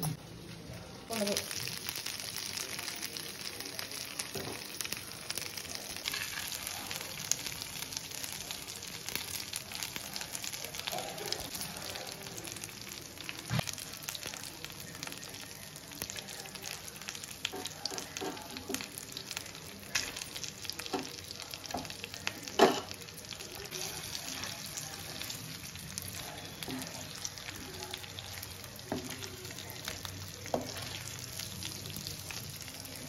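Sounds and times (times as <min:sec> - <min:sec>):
food sizzling in hot oil: 0:00.0 - 0:33.0.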